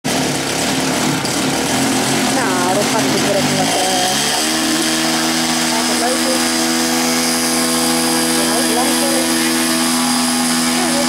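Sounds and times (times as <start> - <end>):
model aircraft engine running: 0.0 - 11.0.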